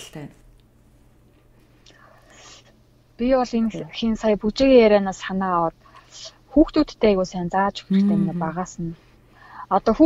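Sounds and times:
low steady hum: 0:00.0 - 0:10.0
faint breath: 0:09.0 - 0:09.7.

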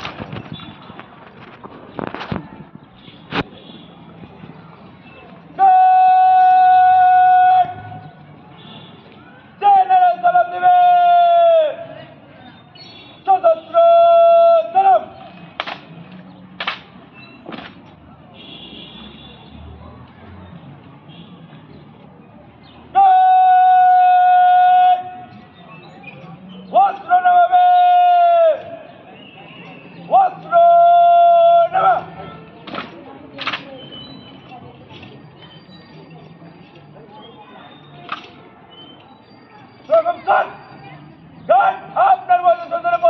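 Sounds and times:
person shouting a command: 0:05.6 - 0:07.8, 0:09.6 - 0:11.8, 0:13.3 - 0:15.1, 0:23.0 - 0:25.1, 0:26.7 - 0:28.6, 0:30.1 - 0:32.1, 0:41.5 - 0:43.0
rifle slaps: 0:15.6 - 0:15.9, 0:16.6 - 0:16.9, 0:32.7 - 0:33.7
drill commander shouting command: 0:41.5 - 0:43.0.

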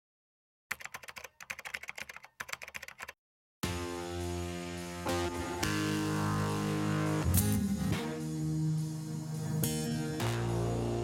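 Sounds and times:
rapid keyboard typing clicks: 0:00.7 - 0:03.2.

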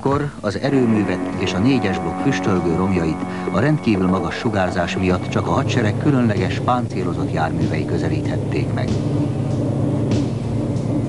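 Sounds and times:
bus engine rumbling: 0:00.7 - 0:11.0.

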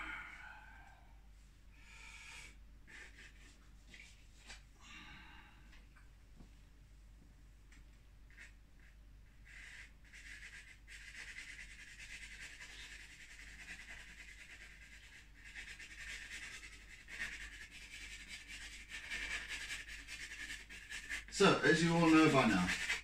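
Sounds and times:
drawing stick scratching paper: 0:02.9 - 0:04.2, 0:08.3 - 0:23.0.

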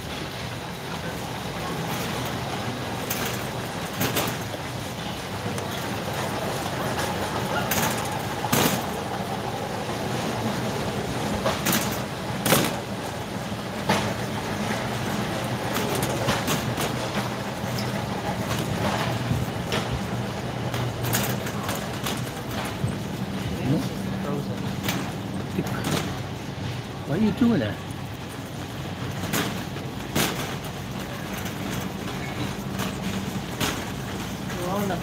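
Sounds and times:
cart basket rattling: 0:00.0 - 0:35.0
shopping cart rolling on concrete: 0:00.0 - 0:35.0.

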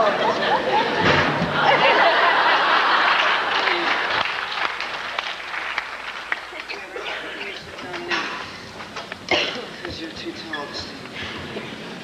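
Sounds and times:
people laughing: 0:00.0 - 0:04.3
audience applauding: 0:01.6 - 0:07.7.

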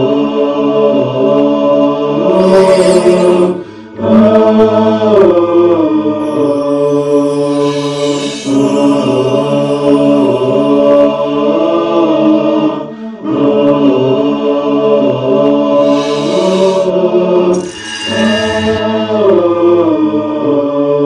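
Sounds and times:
voices chanting held notes: 0:00.0 - 0:21.0.

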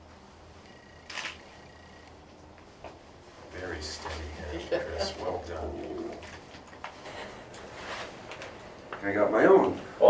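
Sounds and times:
person murmuring: 0:04.5 - 0:06.3.

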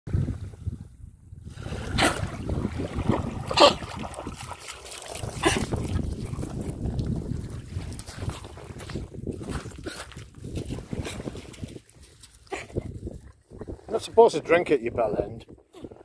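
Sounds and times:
wind noise on microphone: 0:00.1 - 0:16.0
dog splashing through water: 0:01.6 - 0:08.0.

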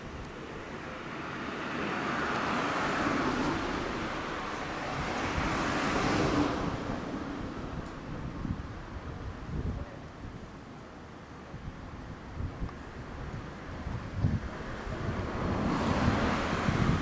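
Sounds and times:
road vehicle passing by: 0:00.4 - 0:08.5, 0:12.8 - 0:17.0.

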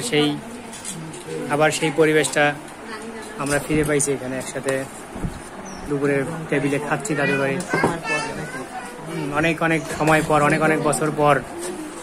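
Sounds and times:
people talking: 0:05.8 - 0:12.0
child's high voice: 0:07.1 - 0:09.4.

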